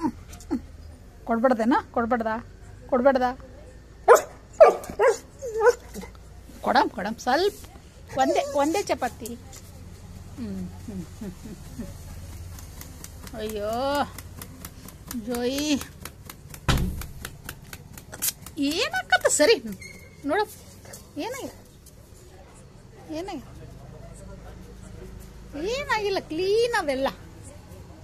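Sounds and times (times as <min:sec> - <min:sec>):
dog barking: 0:04.1 - 0:05.8
rapid even clicking: 0:11.9 - 0:19.8
loud thump: 0:16.6 - 0:17.2.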